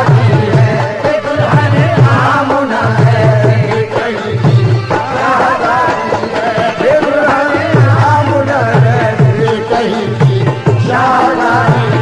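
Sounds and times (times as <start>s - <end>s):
harmonium held notes: 0.0s - 12.0s
tabla beat: 0.0s - 12.0s.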